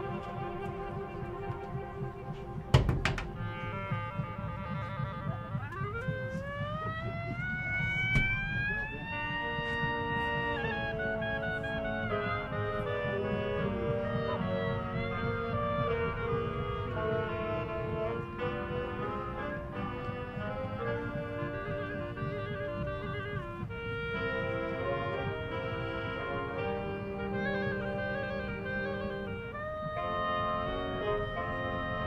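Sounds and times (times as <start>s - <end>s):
marching band playing: 0.0s - 32.0s.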